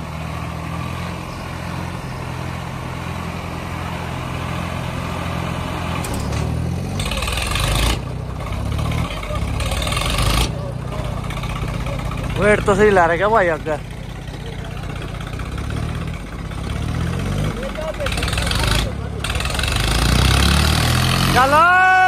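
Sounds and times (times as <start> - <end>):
tractor diesel engine running: 0.0 - 22.0.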